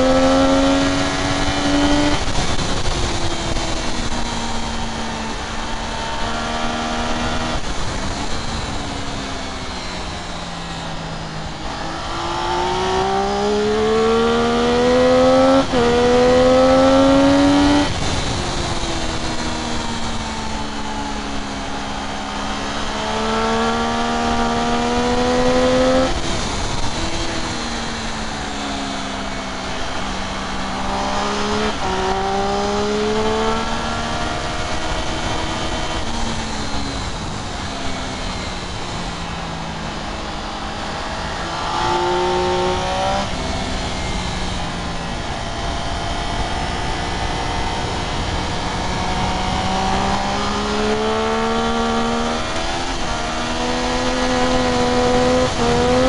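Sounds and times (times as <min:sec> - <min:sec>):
motorcycle engine at racing speed: 0:00.0 - 0:56.0
wind rushing over microphone: 0:00.0 - 0:56.0.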